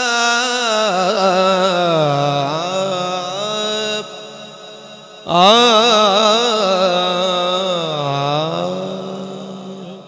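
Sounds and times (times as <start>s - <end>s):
man singing into a microphone: 0.0s - 10.0s.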